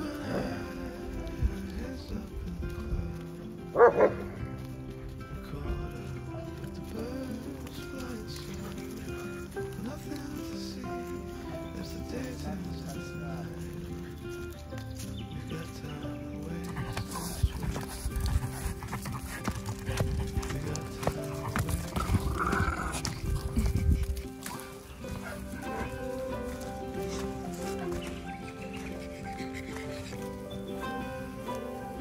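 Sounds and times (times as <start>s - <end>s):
background music with held notes: 0.0s - 32.0s
dog sniffing and snuffling: 16.4s - 32.0s.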